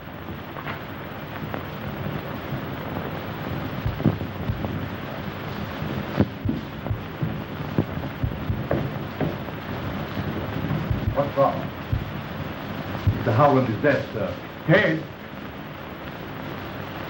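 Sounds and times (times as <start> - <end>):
film soundtrack hiss: 0.0 - 17.0
knocks and thuds: 3.8 - 4.8, 6.2 - 12.2, 13.0 - 13.3.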